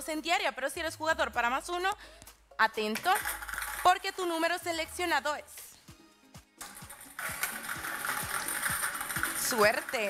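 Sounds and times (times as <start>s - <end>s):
balls rattling in drum: 2.9s - 4.5s, 6.6s - 10.0s.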